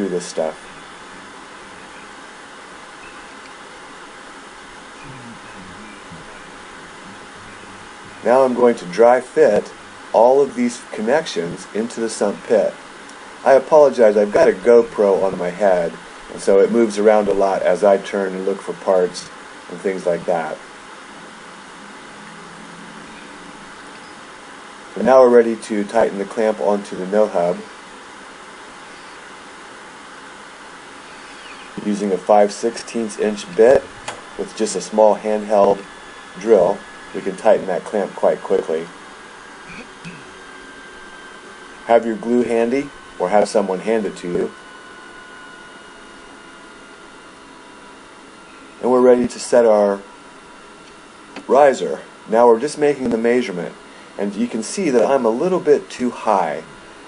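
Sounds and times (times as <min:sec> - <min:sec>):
low background hiss: 0:00.0 - 0:57.0
faint low voice murmuring: 0:05.0 - 0:07.6.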